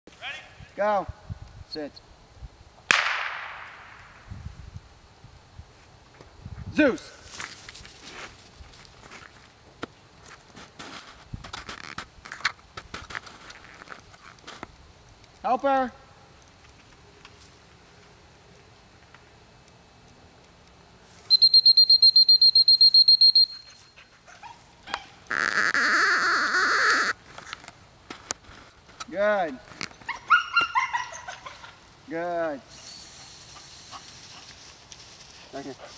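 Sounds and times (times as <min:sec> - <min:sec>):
sharp gunshot with echo: 0:02.9 - 0:04.2
high trilling whistle: 0:21.2 - 0:24.0, 0:32.7 - 0:33.5.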